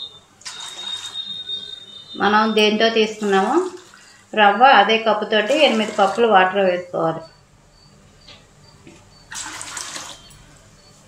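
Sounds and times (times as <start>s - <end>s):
water pouring into metal pot: 0.4s - 1.8s, 2.5s - 4.3s, 5.4s - 6.3s, 9.3s - 10.4s.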